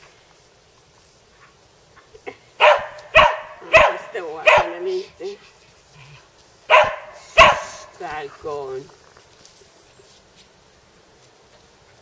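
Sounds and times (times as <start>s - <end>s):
dog barking: 2.6s - 5.0s, 6.7s - 7.9s.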